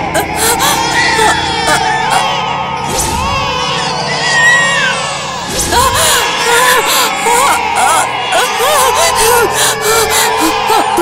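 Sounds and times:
infants crying: 0.0s - 11.0s.

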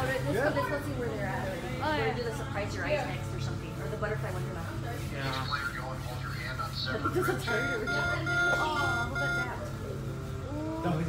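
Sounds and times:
people talking: 0.0s - 10.6s
short high electronic beeps: 7.5s - 9.6s.

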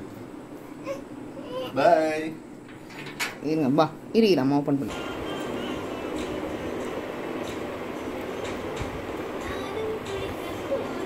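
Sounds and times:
low rumbling background noise: 0.0s - 11.0s.

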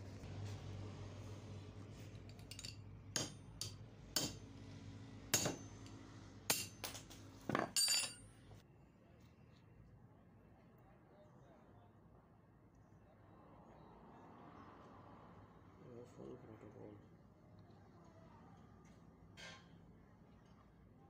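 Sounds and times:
metal tools clinking: 2.2s - 4.4s, 6.5s - 8.3s.

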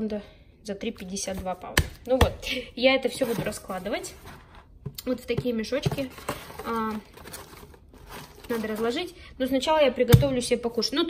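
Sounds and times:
plastic bag rustling and crinkling: 3.1s - 4.7s, 5.6s - 9.2s.

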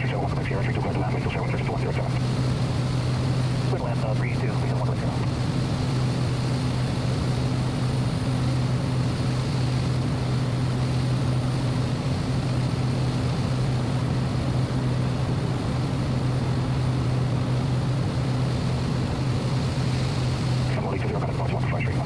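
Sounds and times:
turboprop engine low hum: 0.0s - 22.0s.

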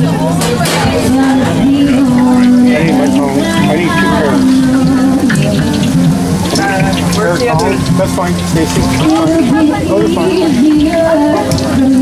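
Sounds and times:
background music: 0.0s - 12.0s
hot oil sizzling and crackling: 0.0s - 12.0s
voices: 0.0s - 12.0s.

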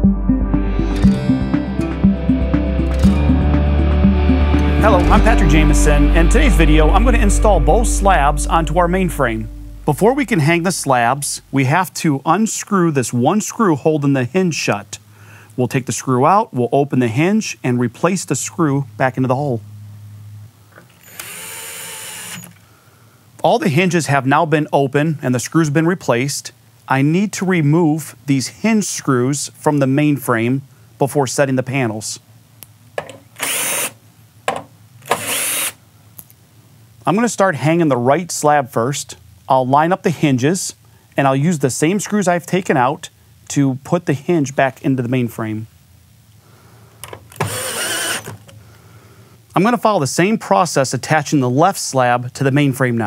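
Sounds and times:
cordless drill driving a screw: 21.0s - 22.6s, 33.4s - 34.0s, 35.0s - 35.8s, 47.3s - 48.4s.

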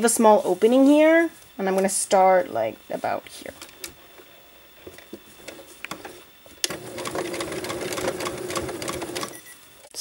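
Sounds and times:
sewing machine stitching: 6.6s - 9.4s.

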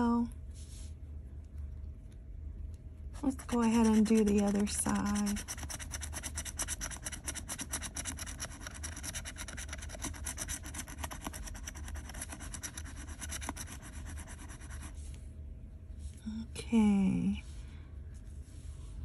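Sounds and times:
scratching lottery ticket: 3.1s - 15.0s.

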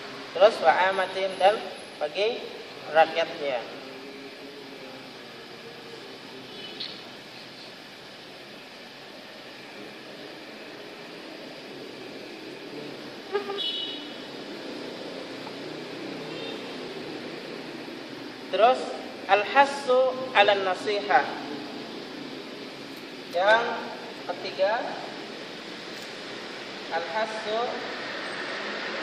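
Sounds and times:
background traffic noise: 0.0s - 29.0s
car horn toots: 13.4s - 14.1s.

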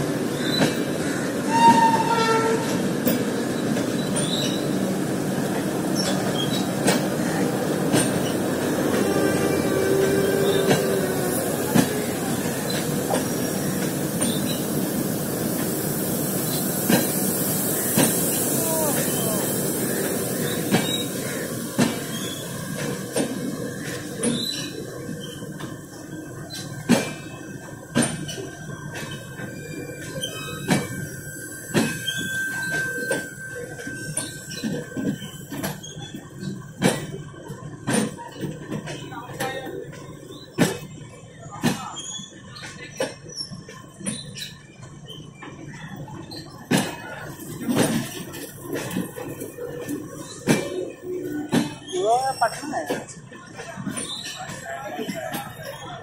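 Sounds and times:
train wheels rumbling over rail joints: 0.0s - 56.0s
high wheel squeals: 6.0s - 15.2s, 29.1s - 36.6s.

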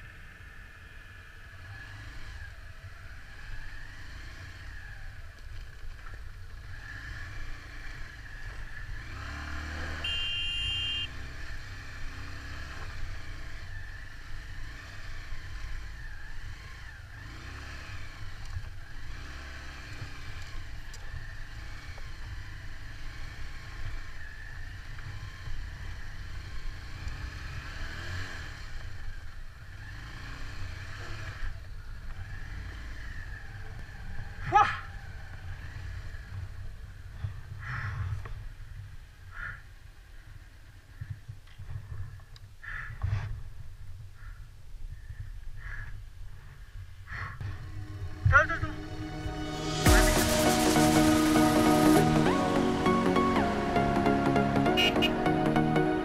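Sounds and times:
motorcycle engine rumble: 0.0s - 56.0s
brief high tone: 10.0s - 11.1s, 47.6s - 56.0s.

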